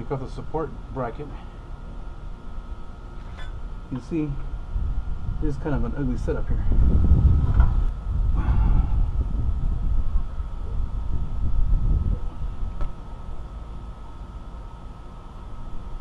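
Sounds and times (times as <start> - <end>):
low irregular outdoor rumble: 0.0 - 16.0.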